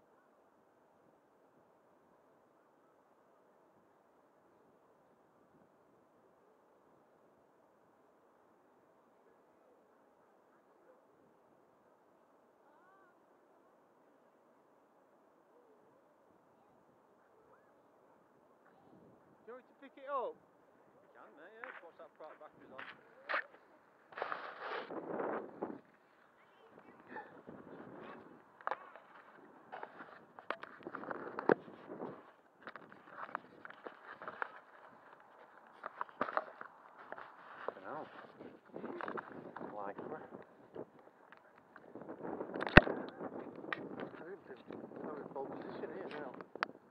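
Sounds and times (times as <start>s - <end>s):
faint outdoor hiss: 0.0s - 46.9s
footsteps through grass: 22.8s - 25.4s.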